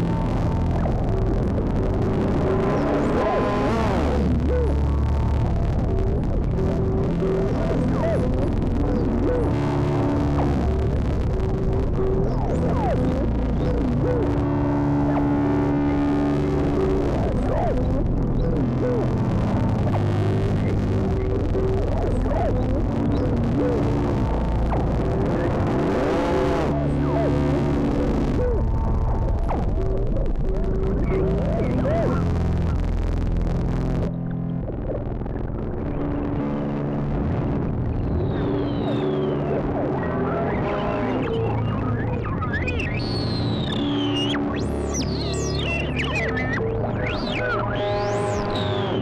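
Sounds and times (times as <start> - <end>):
modular synthesizer ambient drone: 0.0 - 49.0.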